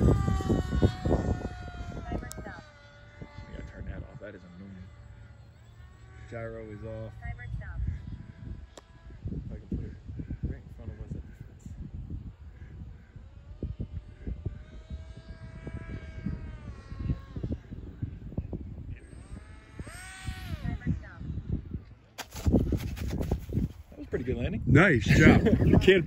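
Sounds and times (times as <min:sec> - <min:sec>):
model plane electric motor whining: 0:00.0 - 0:24.4
wind buffeting microphone: 0:00.0 - 0:26.0.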